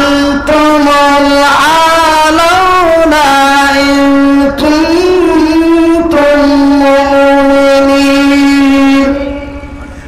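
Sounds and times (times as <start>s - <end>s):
man chanting amplified sung note: 0.0s - 10.0s.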